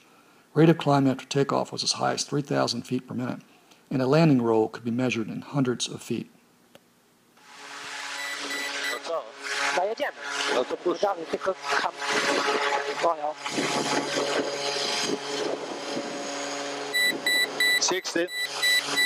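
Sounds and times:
turboprop engine and propeller drone: 8.2 - 19.0
crew voices: 8.8 - 15.4.

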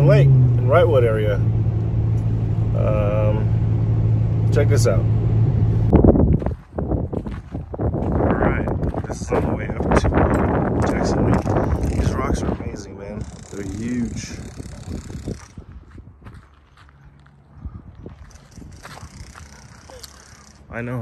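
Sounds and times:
wind on microphone: 5.7 - 16.5, 17.5 - 20.2
crackling rasping clicks: 13.2 - 15.6, 18.3 - 20.7.

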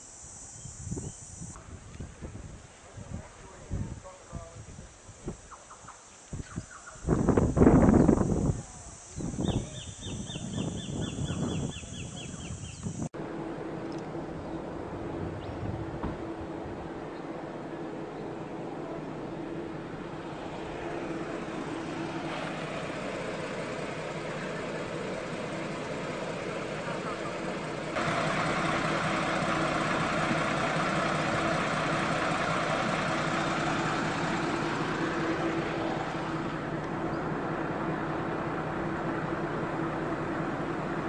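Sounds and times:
vehicle engine running: 0.0 - 41.0.

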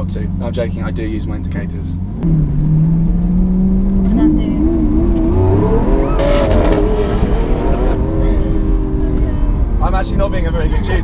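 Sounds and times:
car engine accelerating hard: 0.0 - 11.0.

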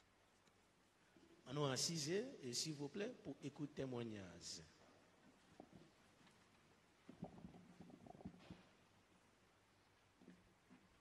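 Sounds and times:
faint knocks and rustles: 4.8 - 9.2, 9.9 - 11.0.

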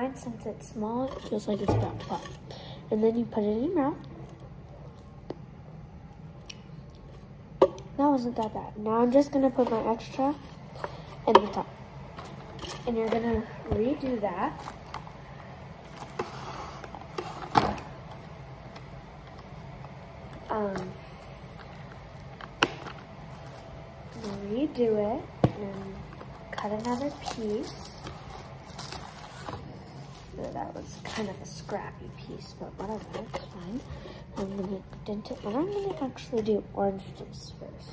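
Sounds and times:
low room hum: 0.0 - 37.9
plastic wrap crinkling: 12.2 - 36.5.

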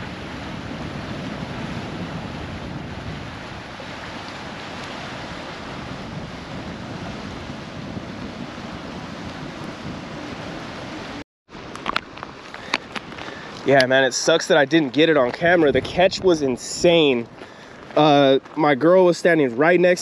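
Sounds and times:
wind rushing over microphone: 0.0 - 18.6
choppy water washing: 0.0 - 20.0.

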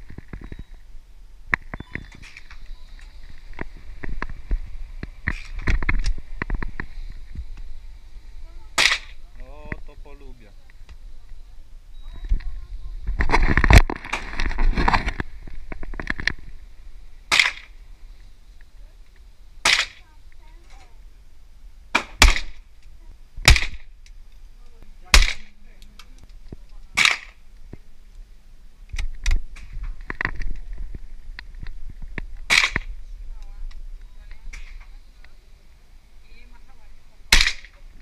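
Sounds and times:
rapid gunshot cracks and clatter: 22.0 - 22.6, 23.4 - 23.8, 25.1 - 25.5, 37.3 - 37.7.

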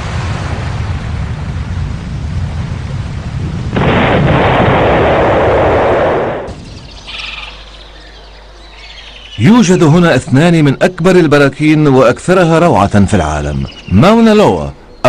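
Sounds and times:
rushing burst: 0.0 - 6.8
lava rumbling: 0.0 - 7.7
faint bird calls: 6.6 - 10.2.

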